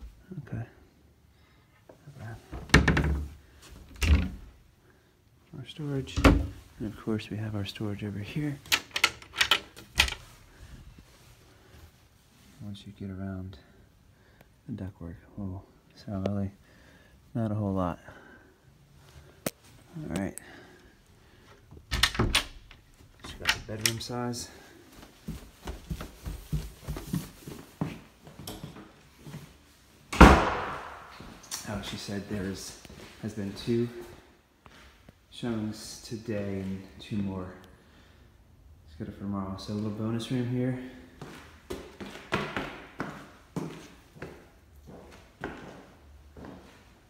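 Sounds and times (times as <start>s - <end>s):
quiet handling sounds: 19.0s - 29.8s
door slamming shut: 30.1s - 31.3s.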